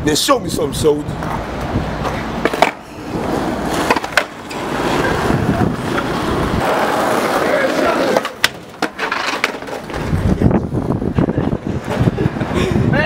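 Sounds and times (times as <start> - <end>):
skateboard wheels rolling on pavement: 0.1 - 13.0
skateboard clacks: 2.0 - 10.4.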